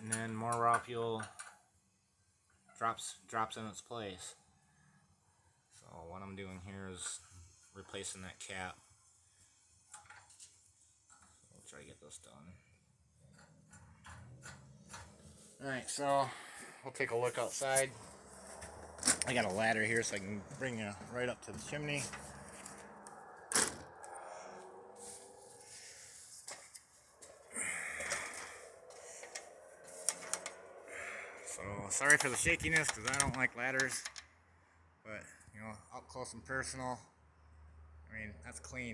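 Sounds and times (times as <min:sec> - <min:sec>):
ladder scraping and rattling: 0:21.5 - 0:22.9, 0:28.0 - 0:30.6.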